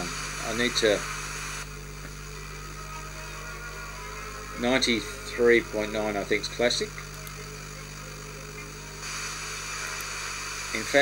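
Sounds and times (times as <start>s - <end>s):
mains hum: 0.0s - 11.0s
radio static hiss: 0.0s - 11.0s.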